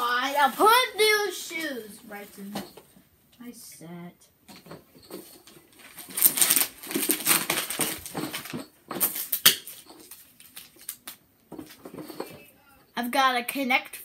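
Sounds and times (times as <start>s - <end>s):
wrapping paper tearing and rustling: 5.7s - 11.2s.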